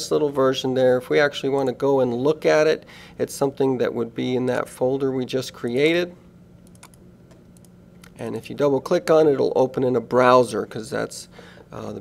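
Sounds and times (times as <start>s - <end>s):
computer mouse clicks: 6.6s - 7.7s.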